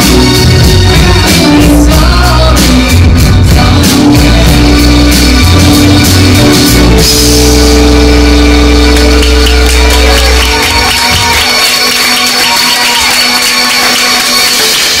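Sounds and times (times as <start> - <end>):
band holding sustained chord: 6.6 - 11.1
audience applause: 8.6 - 15.0.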